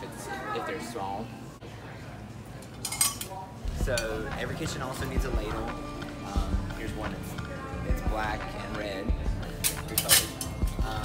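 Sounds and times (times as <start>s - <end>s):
metal utensils clinking: 2.6s - 3.4s, 9.6s - 10.9s.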